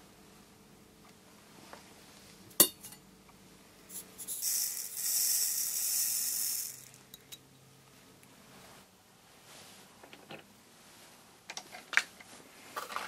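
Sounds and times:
powder pouring hiss: 4.3s - 7.0s.

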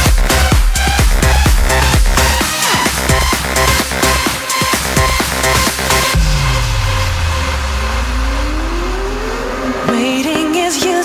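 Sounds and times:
house music beat: 0.0s - 11.0s
deep bass tone sliding down: 5.0s - 10.3s
rising synth sweep: 5.0s - 10.8s.

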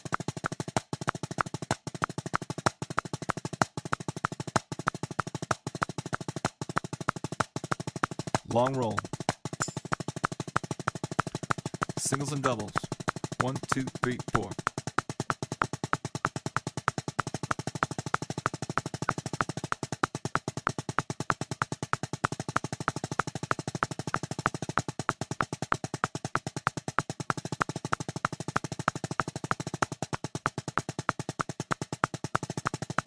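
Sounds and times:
drumsticks striking a drum: 11.2s - 17.1s.

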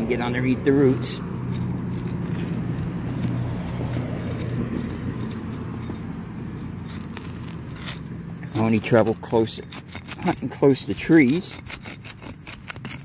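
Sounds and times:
low engine hum: 0.0s - 11.7s
hand digger scraping soil: 0.0s - 13.0s.

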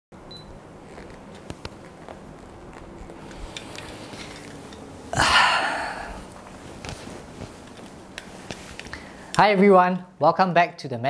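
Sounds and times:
low room hum: 0.2s - 11.0s.

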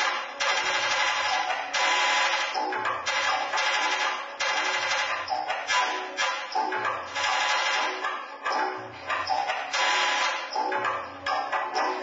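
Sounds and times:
crackling experimental noise music: 0.0s - 12.0s.

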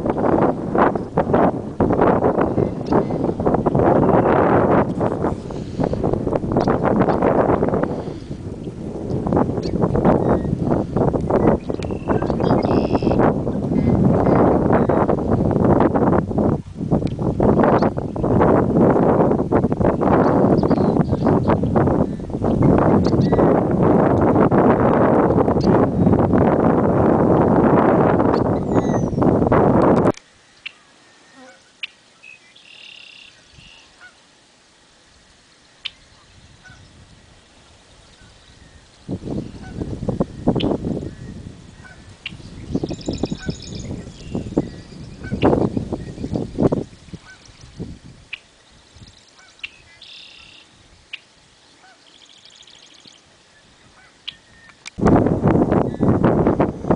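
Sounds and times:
wind buffeting microphone: 0.0s - 30.2s, 35.8s - 50.0s, 50.7s - 56.9s
songbird buzzy phrases: 31.2s - 33.8s.

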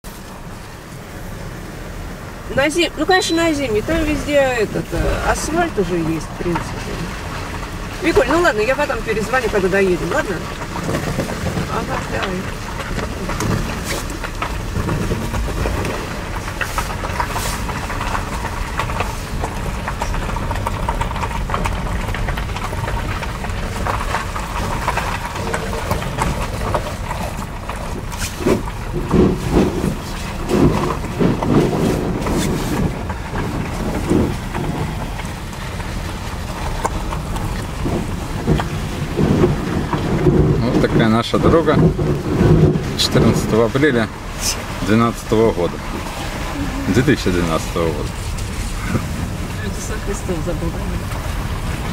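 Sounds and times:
car engine and tyres rumbling: 0.0s - 51.9s
car knocks and jolts: 0.0s - 51.9s.

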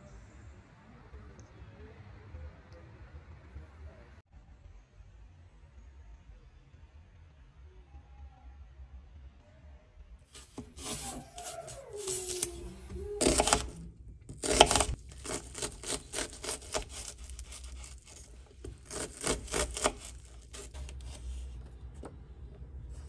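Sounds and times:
knife chopping on wooden board: 13.2s - 21.2s.

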